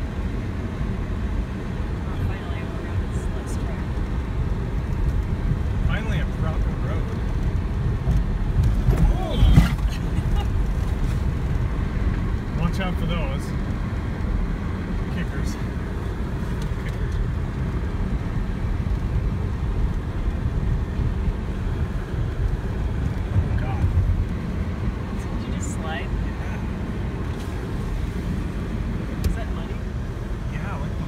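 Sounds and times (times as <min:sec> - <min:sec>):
engine and tyres rumbling: 0:00.0 - 0:31.0.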